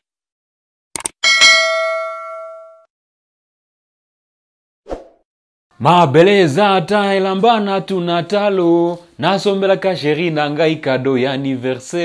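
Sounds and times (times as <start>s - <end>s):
bell-like notification ding: 1.2s - 2.9s.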